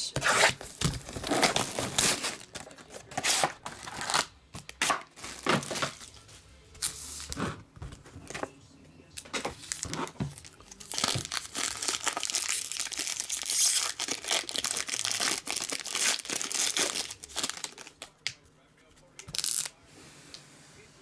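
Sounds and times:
card pack wrapper crinkling: 9.6 - 18.1.

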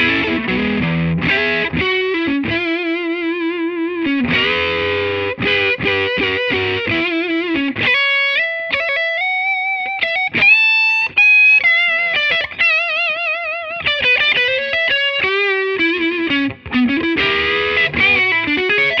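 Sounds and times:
electric guitar lead line: 0.0 - 19.0.

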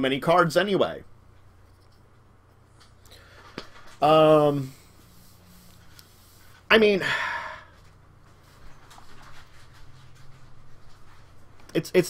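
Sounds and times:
low steady hum: 0.0 - 12.0
soft clicks and rustles: 1.3 - 4.2, 7.8 - 11.8.

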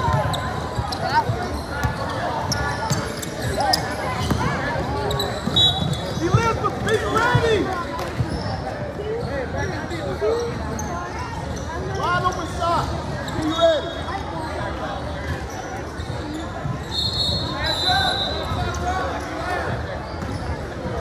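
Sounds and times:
sneaker squeaks on gym floor: 0.0 - 21.0
voices echoing in a hall: 0.0 - 21.0.

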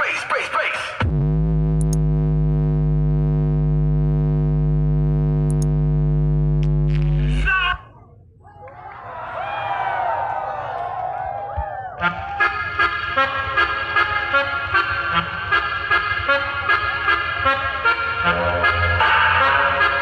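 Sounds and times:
loud synthesized bass note: 1.0 - 7.5
crowd shouting and whistling: 8.4 - 12.8.

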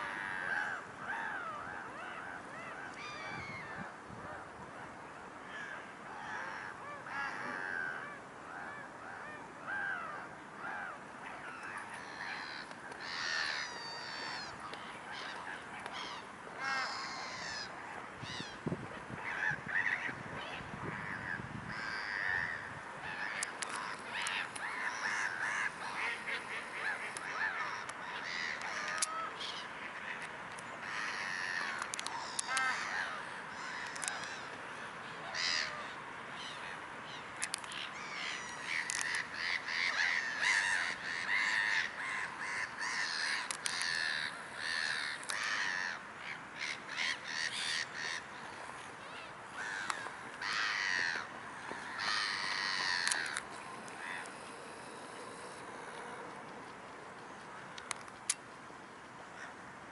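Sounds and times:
many birds calling: 0.0 - 58.3.

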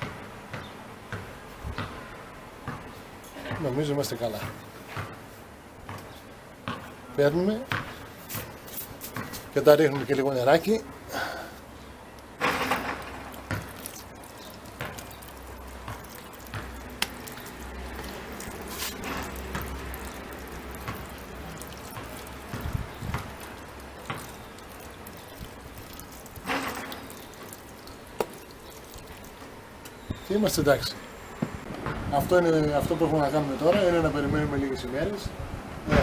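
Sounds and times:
water trickling onto soil: 8.2 - 31.0
small clicks and drips: 12.1 - 30.8.

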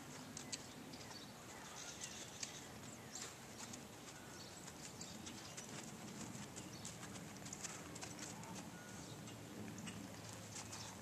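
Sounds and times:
horse hooves walking on sand: 0.0 - 11.0.

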